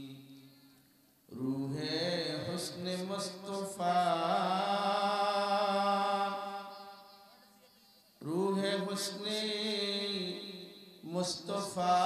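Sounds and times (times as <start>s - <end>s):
man chanting through a microphone: 0.0s - 0.7s, 1.3s - 7.2s, 8.2s - 12.0s.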